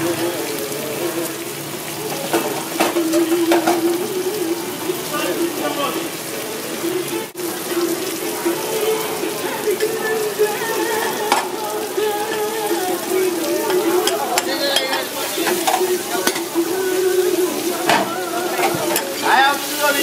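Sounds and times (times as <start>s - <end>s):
butter frying: 0.0s - 20.0s
food sizzling on a griddle: 0.0s - 20.0s.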